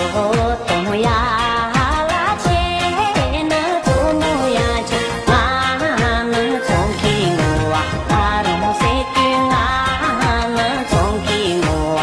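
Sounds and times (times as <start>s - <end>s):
person singing with vibrato: 0.0s - 12.0s
pop beat with sliding bass: 0.0s - 12.0s.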